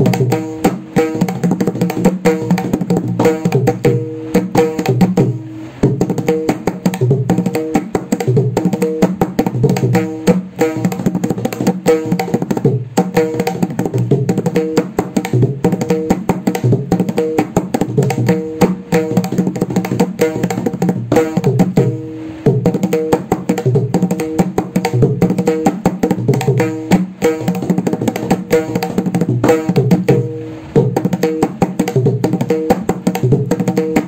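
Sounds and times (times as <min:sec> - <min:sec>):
mridangam drumming: 0:00.0 - 0:34.0.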